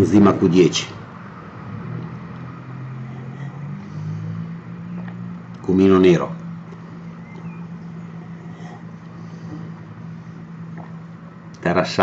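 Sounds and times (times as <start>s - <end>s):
low motor hum: 0.0s - 11.6s.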